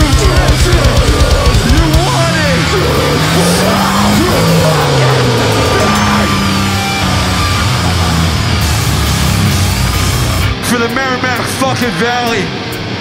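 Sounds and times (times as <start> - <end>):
vocalist screaming: 0.0 - 8.2
pounding drum kit: 0.0 - 10.7
bass guitar: 0.0 - 13.0
distorted guitars: 0.0 - 13.0.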